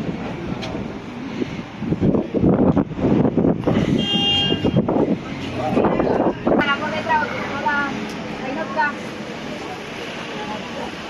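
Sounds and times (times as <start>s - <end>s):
horn toot: 3.8s - 4.9s
people talking: 5.2s - 11.0s.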